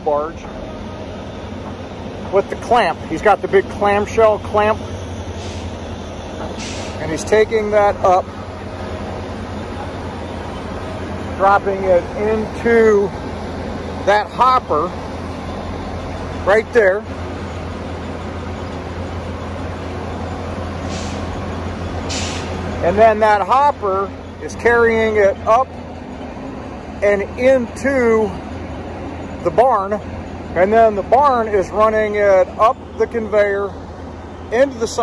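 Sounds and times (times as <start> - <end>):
heavy machinery drone: 0.0 - 35.0
short hisses: 5.3 - 5.9, 6.6 - 7.0, 20.8 - 21.3, 22.1 - 22.6.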